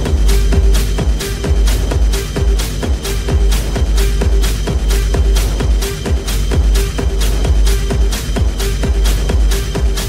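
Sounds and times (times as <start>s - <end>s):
hi-hats: 0.0s - 10.0s
kick drum: 0.0s - 10.0s.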